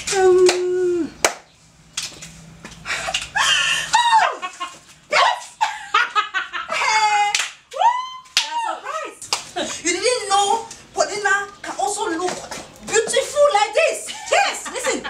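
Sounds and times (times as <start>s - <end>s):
sharp slaps or claps: 0.4s - 2.2s, 7.3s - 8.6s
women crying out and laughing: 3.3s - 8.8s.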